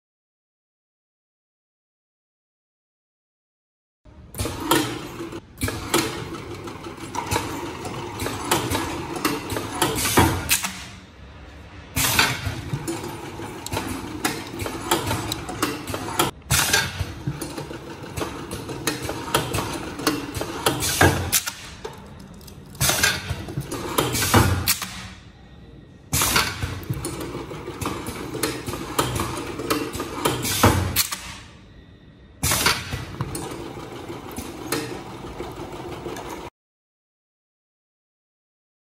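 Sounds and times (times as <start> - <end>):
sealing machine running: 4.3 - 11.0, 12.0 - 25.2, 26.2 - 31.5, 32.4 - 36.5
mechanical clicks and knocks: 12.0 - 25.2, 26.2 - 31.4.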